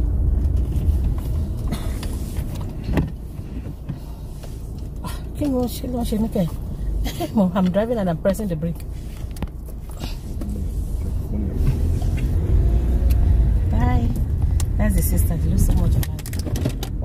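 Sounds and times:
car cabin rumble: 0.0 - 17.0
voices: 13.6 - 16.3.

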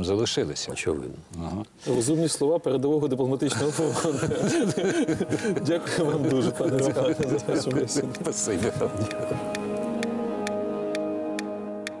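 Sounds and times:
sustained music notes: 3.7 - 12.0.

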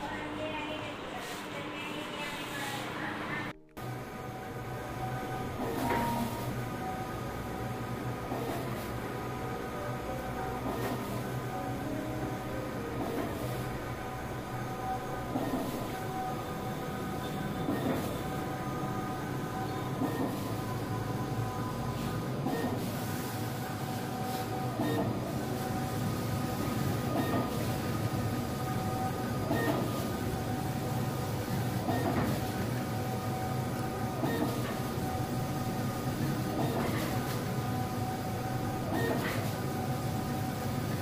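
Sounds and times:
printer fans and motors whirring: 0.0 - 41.0.

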